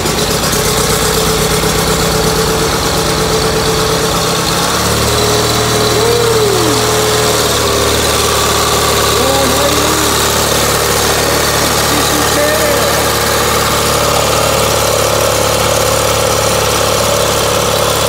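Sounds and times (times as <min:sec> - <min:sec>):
garden tractor engine running: 0:00.0 - 0:18.0.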